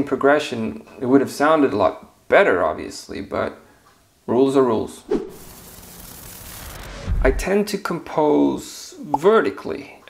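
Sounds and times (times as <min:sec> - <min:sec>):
transition hiss sound effect: 0:04.9 - 0:07.6.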